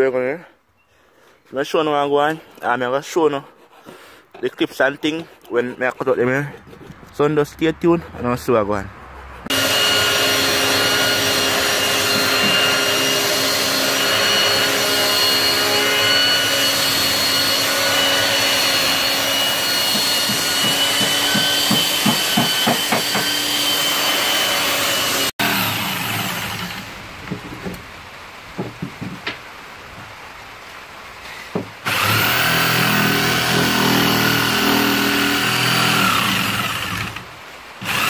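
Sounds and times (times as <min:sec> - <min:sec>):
belt sander on wood: 0:09.3 - 0:26.9, 0:31.9 - 0:37.2.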